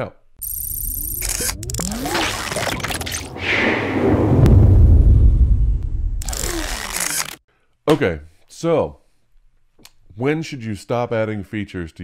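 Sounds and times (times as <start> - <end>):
sharp clicks: 0.4 - 3.3, 6.2 - 7.4
glitchy digital noise: 0.4 - 3.4
rising sweeps: 1.2 - 6.4.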